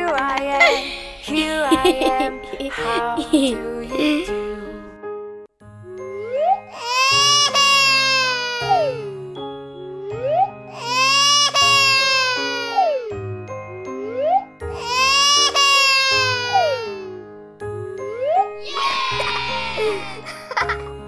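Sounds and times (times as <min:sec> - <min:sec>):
children's music with sliding notes: 0:05.9 - 0:21.0
baby crying: 0:06.3 - 0:09.1, 0:10.3 - 0:13.2, 0:14.2 - 0:17.2, 0:18.6 - 0:20.7.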